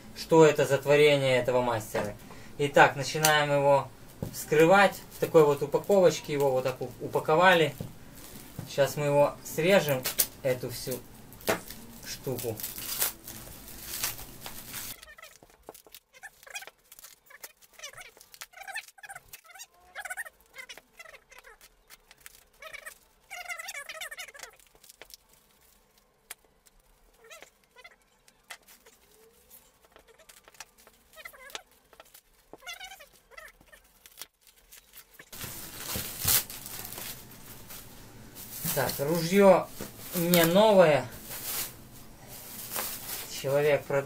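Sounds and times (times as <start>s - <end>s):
plastic film crinkling: 2.9s - 44.0s
fabric rustling: 11.1s - 44.0s
stretched plastic squeaks: 12.3s - 37.1s.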